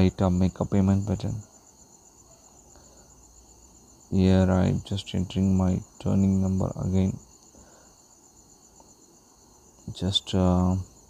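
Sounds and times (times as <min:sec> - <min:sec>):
person speaking: 0:00.0 - 0:01.5, 0:04.1 - 0:07.3, 0:09.8 - 0:10.9.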